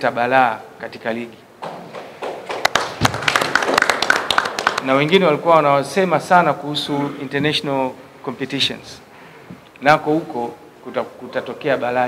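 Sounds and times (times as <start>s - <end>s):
audience hand clapping: 1.6s - 5.0s.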